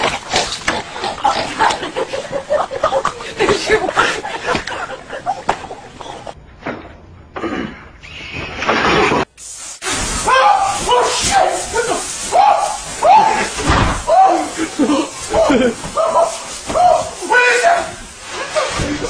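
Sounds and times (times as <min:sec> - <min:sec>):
man screaming in fright: 0:10.2 - 0:18.0.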